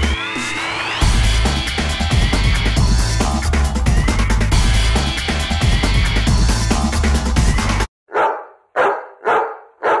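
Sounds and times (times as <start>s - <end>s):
dog barking: 8.1s - 10.0s.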